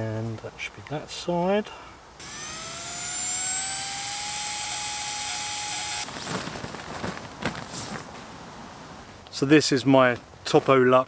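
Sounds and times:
electric air pump motor whine: 2.2 - 6.1
rustling: 5.9 - 8.4.

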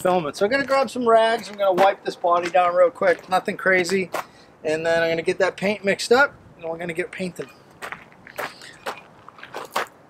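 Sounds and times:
footsteps on gravel: 0.5 - 4.3, 7.8 - 10.0.

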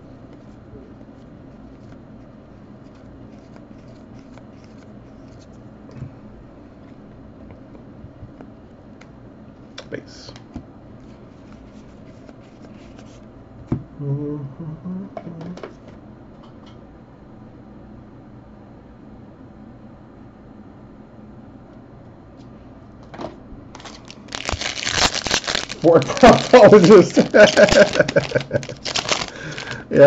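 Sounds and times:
foil wrapper crinkling and tearing: 23.8 - 29.9.

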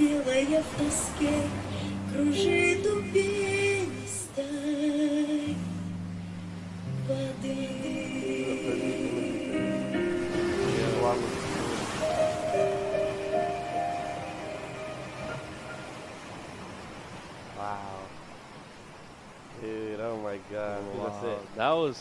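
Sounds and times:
person singing: 0.0 - 5.8, 7.0 - 11.3
soft rushing hiss: 0.0 - 22.0
slow piano ballad: 1.2 - 16.3.

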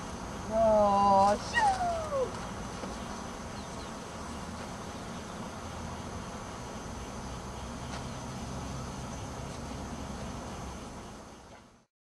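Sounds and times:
woman calling: 0.5 - 2.4
dog whining: 1.4 - 2.3.

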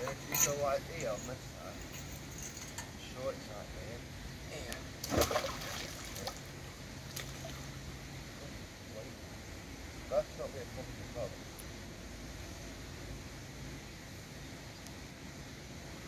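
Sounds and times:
magnet splashing into water: 5.0 - 6.4.

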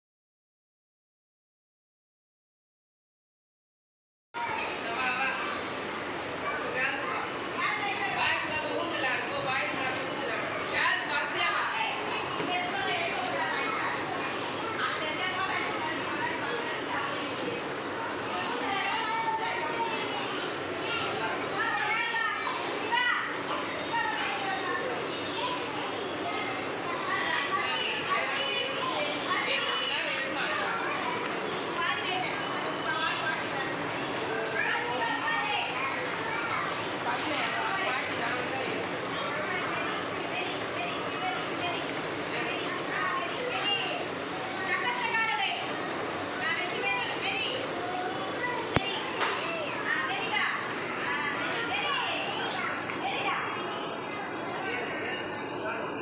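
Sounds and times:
young children chattering: 4.4 - 56.0.

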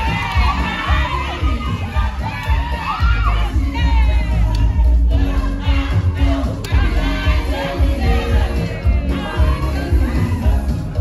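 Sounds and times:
audience cheering and whooping: 0.0 - 11.0
dance music with heavy bass: 0.0 - 11.0.

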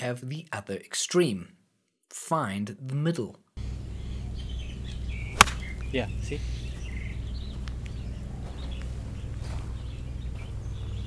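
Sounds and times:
golf iron striking ball: 5.2 - 5.9.

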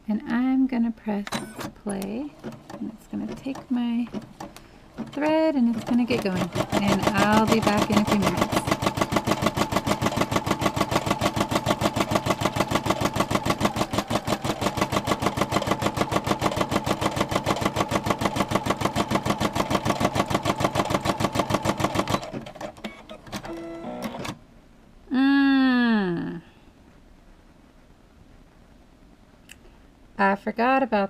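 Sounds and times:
embroidery machine stitching: 1.3 - 24.4.

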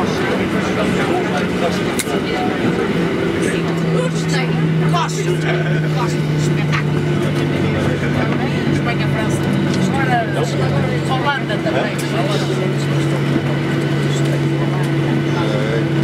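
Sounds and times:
jet engine hum winding down: 0.0 - 16.0
muffled voices in cabin: 0.0 - 16.0.

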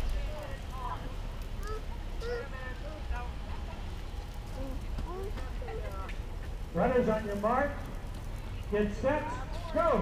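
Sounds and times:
distant crowd chatter: 0.0 - 10.0
steady low rumble: 0.0 - 10.0.

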